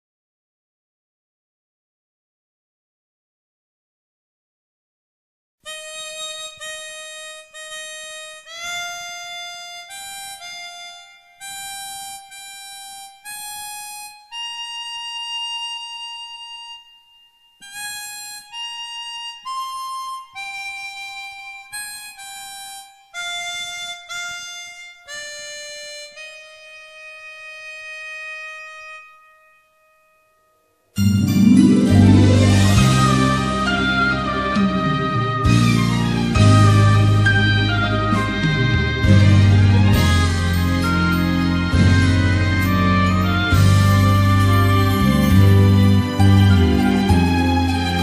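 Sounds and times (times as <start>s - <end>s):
solo harmonica melody: 5.7s - 48.0s.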